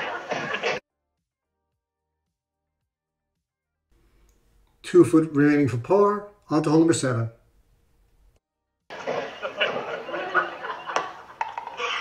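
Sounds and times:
voices talking and laughing: 0:08.9 - 0:12.0.

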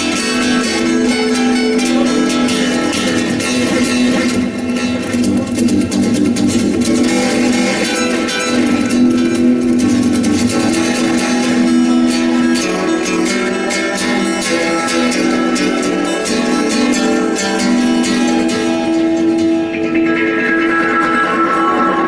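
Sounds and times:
solo acoustic guitar: 0:00.0 - 0:22.0.

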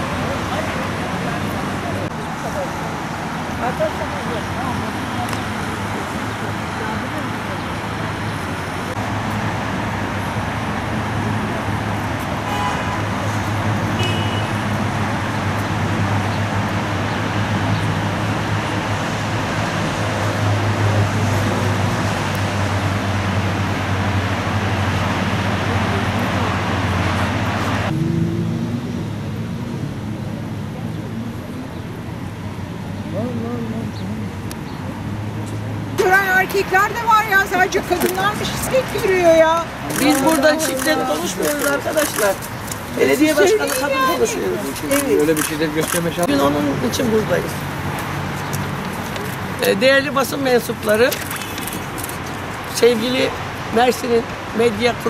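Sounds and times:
road traffic rumble and hiss: 0:00.0 - 0:55.0.

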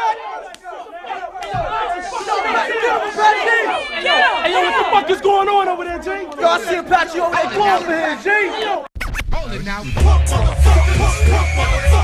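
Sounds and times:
voices talking and shouting: 0:00.0 - 0:12.0.

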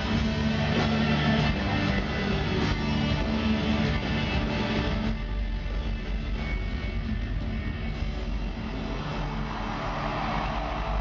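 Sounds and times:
crowd-like hiss: 0:08.7 - 0:11.0.

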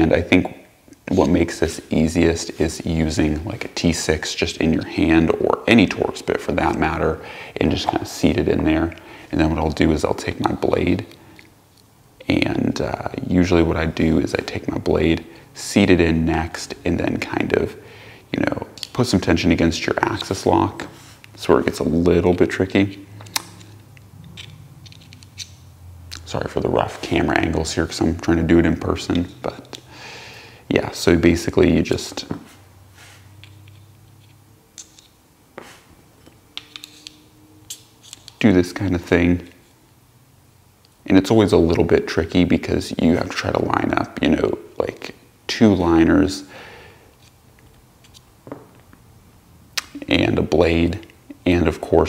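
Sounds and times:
low steady hum: 0:00.0 - 0:52.0
knife parts clicking: 0:23.2 - 0:25.6, 0:36.2 - 0:38.4.

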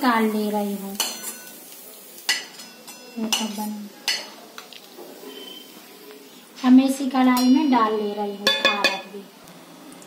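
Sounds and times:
steel spoon clinking on metal: 0:02.3 - 0:03.5.

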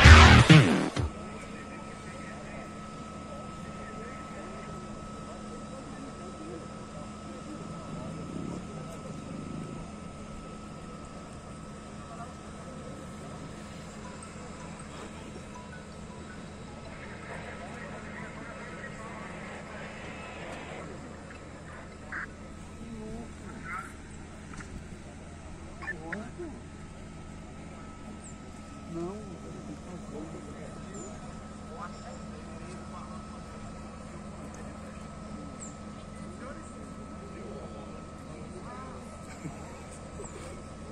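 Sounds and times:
faint indistinct voices: 0:00.0 - 0:40.9
steady low hum: 0:00.0 - 0:40.9
thin high tone: 0:14.0 - 0:22.2.

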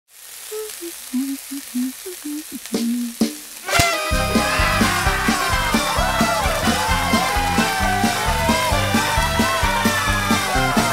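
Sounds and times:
food sizzling in a frying pan: 0:00.1 - 0:10.9
music: 0:02.7 - 0:10.9
sharp pop: 0:03.7 - 0:04.2.

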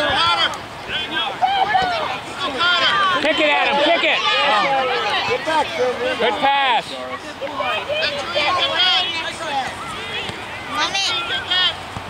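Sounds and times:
voices calling out and talking: 0:00.0 - 0:12.0.

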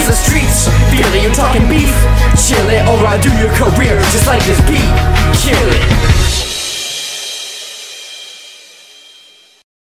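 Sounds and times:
hip-hop beat: 0:00.0 - 0:08.0
crash cymbal ringing: 0:06.2 - 0:09.6.

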